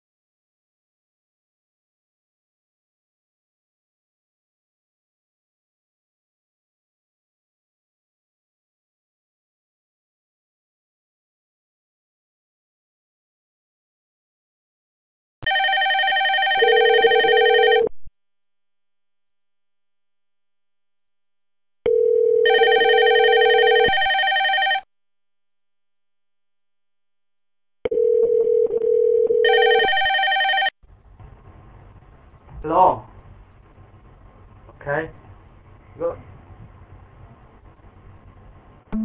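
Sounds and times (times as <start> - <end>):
low steady ringback tone: 15.4 - 17.9, 21.8 - 24.9, 27.8 - 30.7
warbling electronic ringtone: 15.5 - 17.9, 21.9 - 24.8, 27.9 - 30.7.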